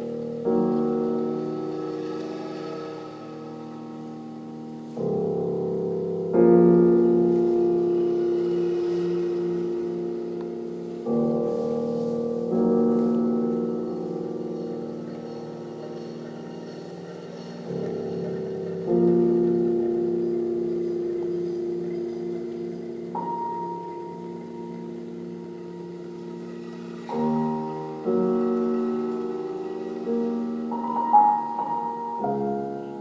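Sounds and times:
held piano chord: 0:00.0 - 0:33.0.

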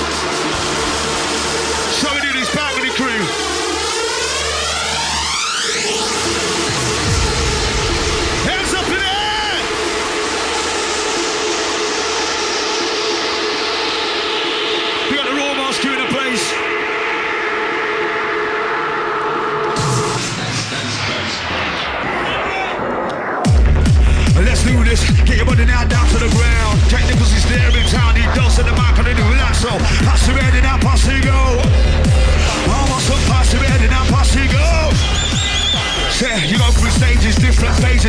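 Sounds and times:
sustained synth chords: 0:16.5 - 0:22.1, 0:22.8 - 0:36.0
kick and bass beat: 0:16.6 - 0:21.2, 0:22.4 - 0:38.0.

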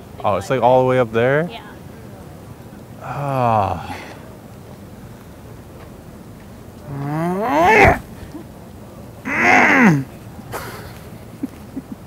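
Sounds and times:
man making wordless vocal sounds: 0:03.0 - 0:04.0, 0:06.9 - 0:08.0, 0:09.3 - 0:10.1.

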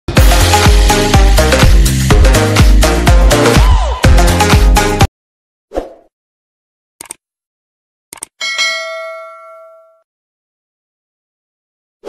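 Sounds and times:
cursor clicks: 0:07.0 - 0:07.2, 0:08.1 - 0:08.4
notification bell chime: 0:08.4 - 0:10.0.

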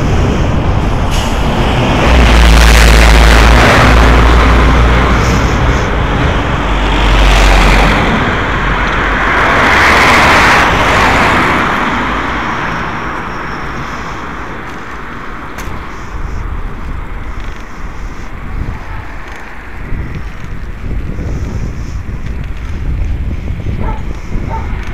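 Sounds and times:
road and wind hiss: 0:00.0 - 0:24.9
vehicles passing close by: 0:00.0 - 0:24.9.

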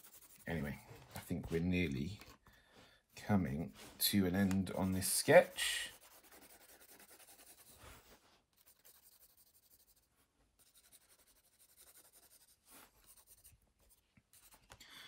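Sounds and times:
pencil scratching on paper: 0:00.0 - 0:01.6, 0:04.4 - 0:14.7.

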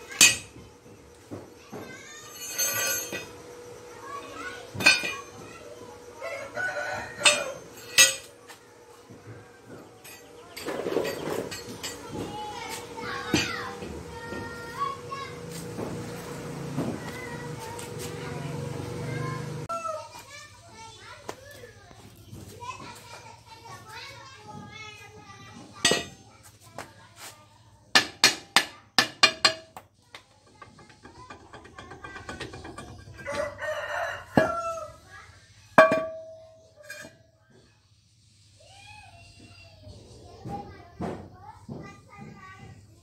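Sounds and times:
rooster crowing: 0:06.2 - 0:07.8, 0:33.2 - 0:35.2
chickens calling: 0:32.8 - 0:35.2.

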